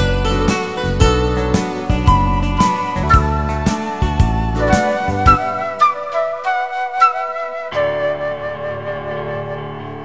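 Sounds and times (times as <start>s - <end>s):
keyboard chord with bass: 0.0s - 6.5s
electronic keyboard flute melody: 0.0s - 10.0s.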